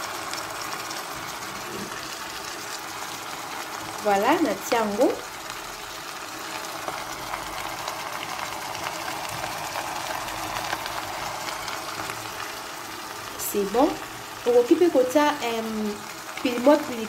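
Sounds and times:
vegetables sizzling in a pot: 0.0s - 17.0s.

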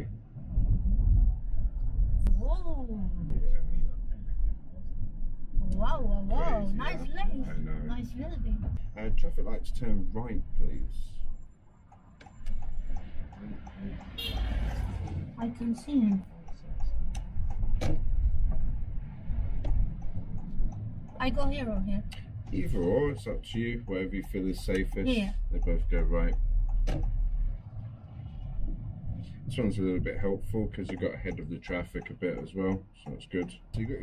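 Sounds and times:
car cabin rumble: 12.2s - 34.0s.

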